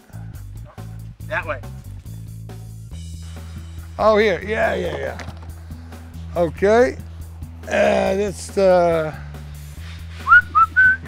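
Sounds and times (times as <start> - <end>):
low background music: 0.0 - 11.0
person whistling: 10.2 - 11.0.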